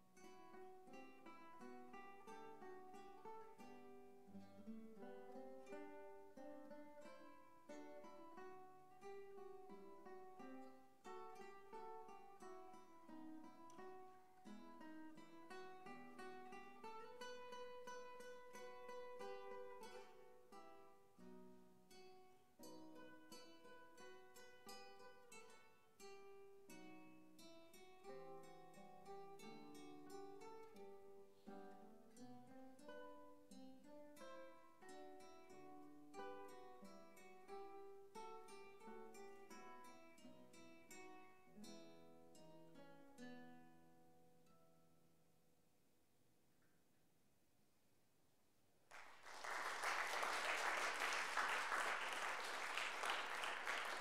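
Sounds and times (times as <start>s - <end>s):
classical guitar duet: 0.0s - 46.9s, 48.9s - 54.0s.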